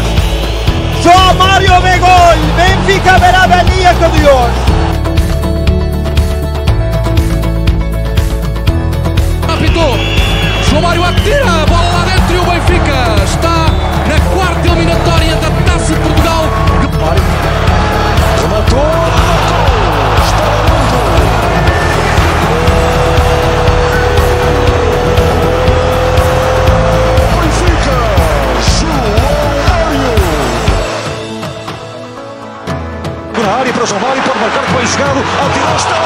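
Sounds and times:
music with heavy bass beat: 13.8s - 30.8s.

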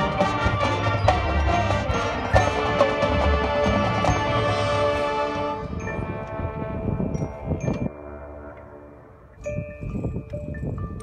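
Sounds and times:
marching band chord: 0.0s - 9.2s
mallet keyboard notes: 0.0s - 11.0s
chimes ringing: 0.9s - 11.0s.

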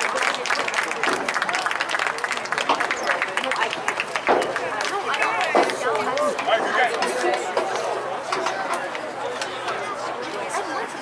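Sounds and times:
many voices talking: 0.0s - 11.0s.

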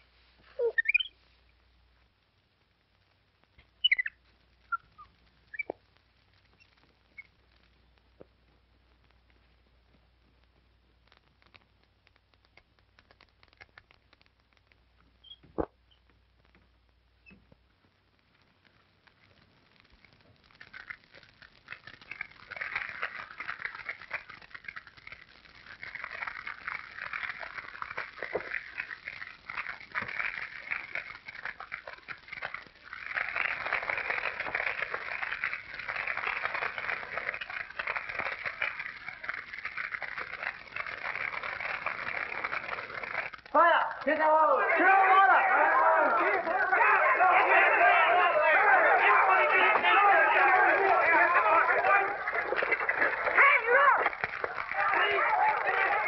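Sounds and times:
burning hay crackling: 0.0s - 56.0s.

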